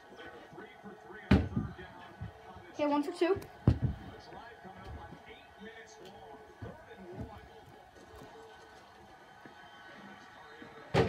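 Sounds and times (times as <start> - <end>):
faint television sports commentary: 0.0 - 11.0
soft thumps: 3.4 - 5.2.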